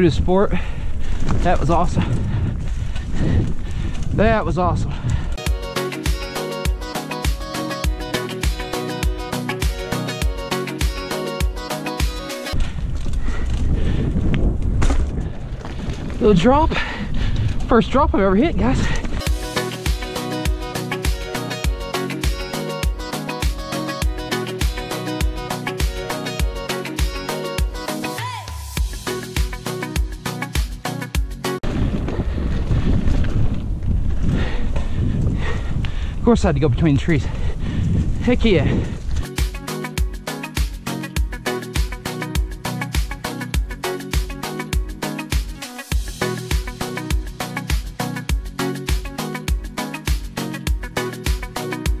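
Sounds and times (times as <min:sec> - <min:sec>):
wind rumbling on microphone: 0:00.0 - 0:05.4, 0:12.6 - 0:19.2, 0:31.6 - 0:39.4
background music with steady beat: 0:05.4 - 0:12.6, 0:19.2 - 0:31.6, 0:39.2 - 0:52.0
bike rattling on dirt trail: 0:12.6 - 0:19.2, 0:31.6 - 0:35.6.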